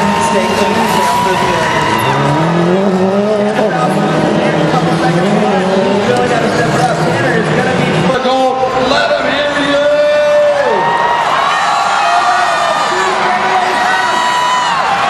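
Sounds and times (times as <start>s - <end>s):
rally car engine revving hard: 0.0s - 8.9s.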